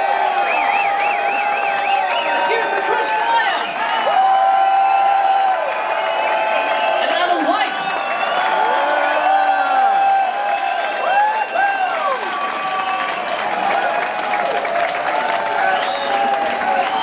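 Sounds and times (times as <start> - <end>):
audience applauding: 0.0 - 17.0
audience cheering: 0.0 - 17.0.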